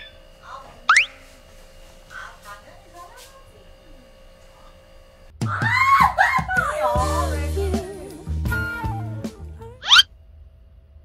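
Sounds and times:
woman squealing: 5.4 - 7.3.

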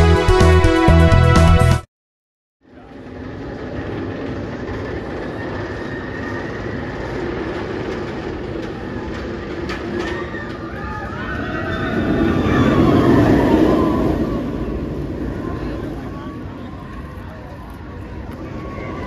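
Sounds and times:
roller coaster rattling up lift hill: 2.7 - 19.0
roller coaster rushing roar: 2.7 - 19.0
riders shouting and screaming: 8.8 - 19.0.

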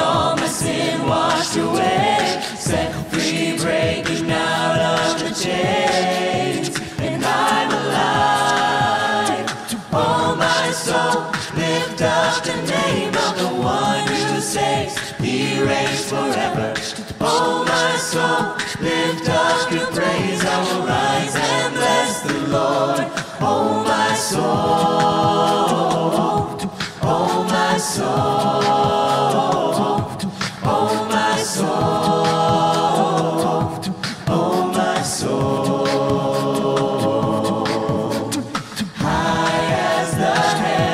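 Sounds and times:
group singing a cappella: 0.0 - 40.9.

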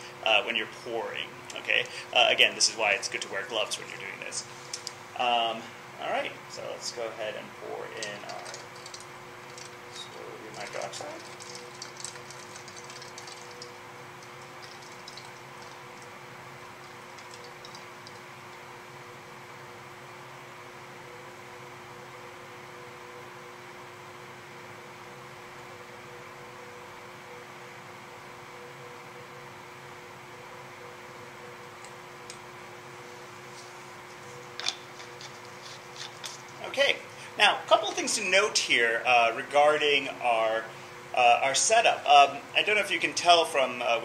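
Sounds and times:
room ventilation hum: 0.0 - 44.0
faint steady tones: 21.0 - 42.3.

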